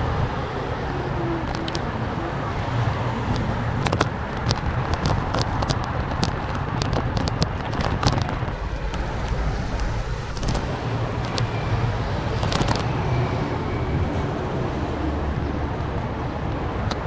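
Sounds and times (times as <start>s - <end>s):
low rumble of wind: 0.0s - 17.0s
road traffic passing: 0.0s - 17.0s
sharp clicks and rattles: 3.3s - 12.9s.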